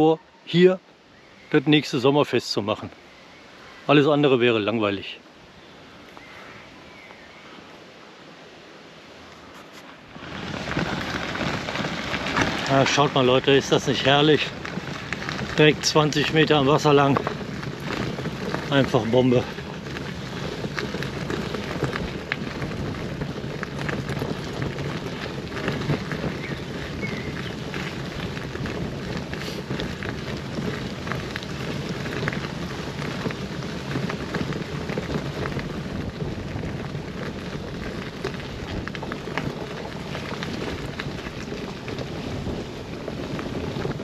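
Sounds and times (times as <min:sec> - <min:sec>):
bicycle tyres rolling on gravel: 0:01.4 - 0:44.0.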